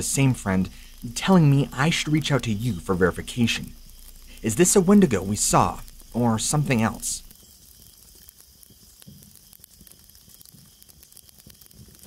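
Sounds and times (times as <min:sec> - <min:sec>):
faint crackle and hiss: 0:00.0 - 0:12.0.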